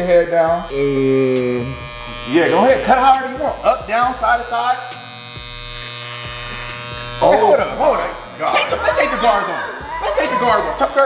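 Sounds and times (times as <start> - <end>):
electric hair clippers buzzing: 0.0 - 11.0.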